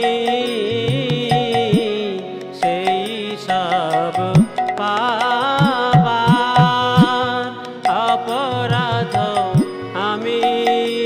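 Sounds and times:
wavering melody line: 5.6 - 9.9.

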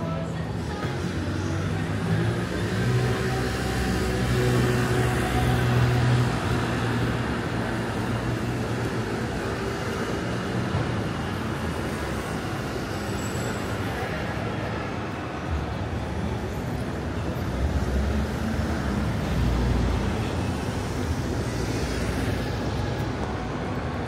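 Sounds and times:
street traffic noise: 0.0 - 24.0.

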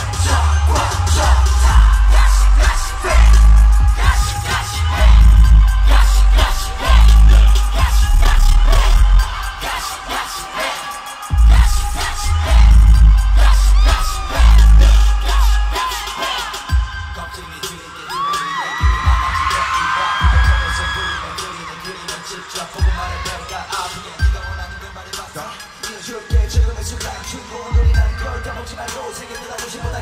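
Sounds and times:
heavy bass pulses: 0.0 - 10.3, 11.3 - 16.1
crowd screaming: 0.0 - 26.1
live pop song over loudspeakers: 0.0 - 30.0
person singing: 0.0 - 30.0.

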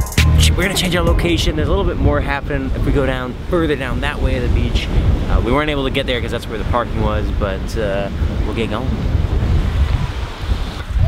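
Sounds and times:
wind buffeting microphone: 0.9 - 11.0.

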